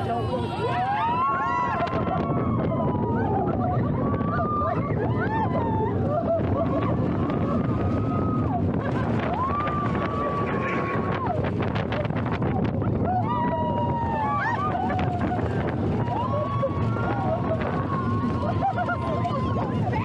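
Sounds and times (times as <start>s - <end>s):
riders whooping and screaming: 0.0s - 20.0s
roller coaster rumbling on track: 0.0s - 20.0s
wind rushing on microphone: 0.0s - 20.0s.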